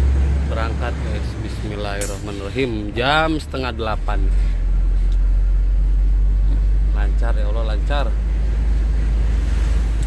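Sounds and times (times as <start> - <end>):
truck engine rumble from cab: 0.0 - 10.0.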